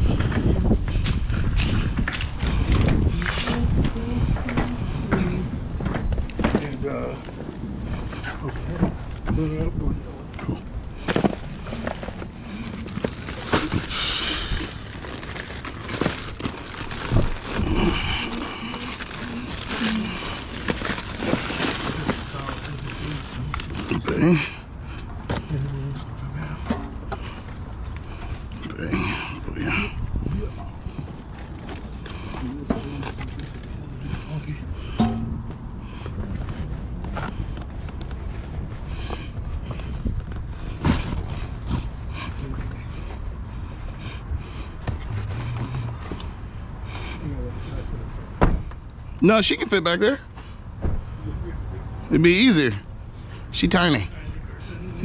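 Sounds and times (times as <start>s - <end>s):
indistinct voices: 2.5s - 31.1s.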